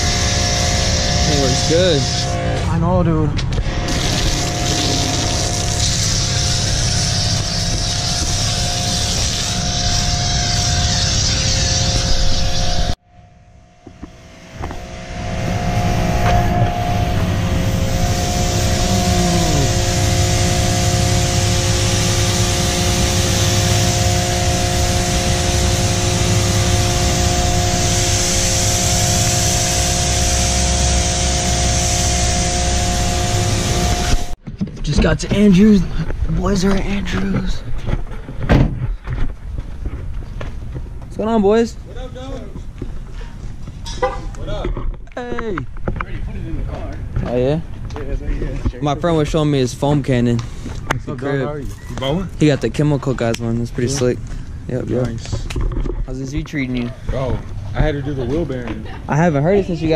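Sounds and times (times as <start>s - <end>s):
pressure washer motor hum: 0.0s - 2.8s, 3.5s - 13.0s, 13.8s - 34.4s
water spray hissing: 3.9s - 11.5s, 17.1s - 34.4s.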